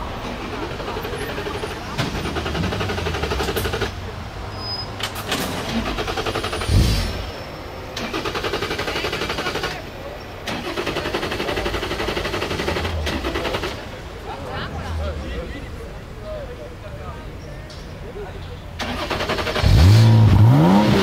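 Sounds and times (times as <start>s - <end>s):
car engine revving against limiter: 18.9s - 21.0s.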